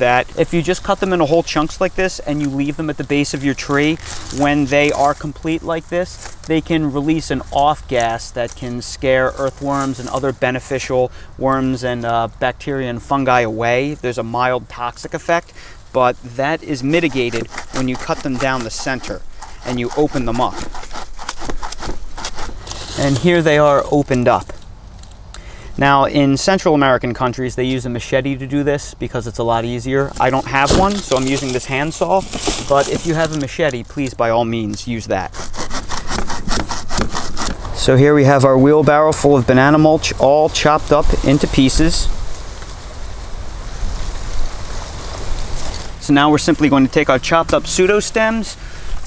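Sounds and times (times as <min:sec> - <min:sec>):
handsaw sawing plant stem: 0:00.0 - 0:10.2, 0:16.0 - 0:24.5, 0:30.1 - 0:33.5, 0:35.0 - 0:37.9.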